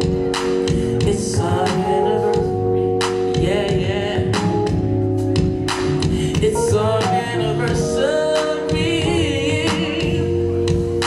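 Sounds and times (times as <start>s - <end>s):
person singing with vibrato: 0.0s - 5.0s, 6.0s - 11.0s
electric bass guitar: 0.0s - 11.0s
soul band playing: 0.0s - 11.0s.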